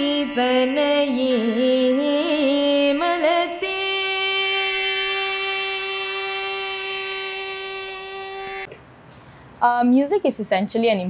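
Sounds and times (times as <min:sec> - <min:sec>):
woman singing a long note: 0:00.0 - 0:08.7.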